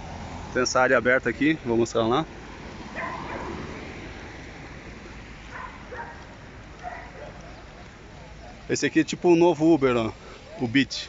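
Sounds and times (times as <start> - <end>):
steady low city rumble: 0.0 - 11.0.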